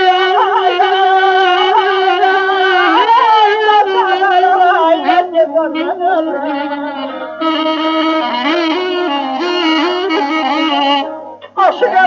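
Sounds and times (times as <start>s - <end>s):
folk music with sliding melody: 0.0s - 12.0s.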